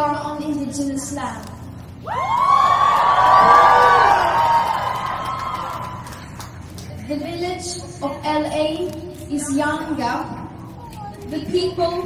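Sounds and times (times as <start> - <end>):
crowd cheering and whooping: 2.0 - 6.5.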